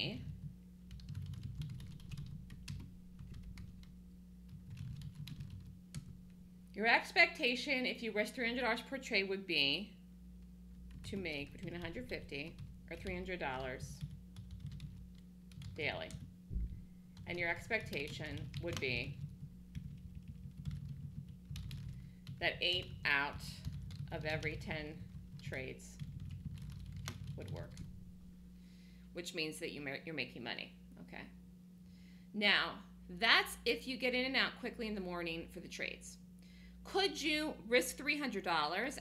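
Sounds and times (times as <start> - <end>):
low steady hum: 0.0 - 39.0.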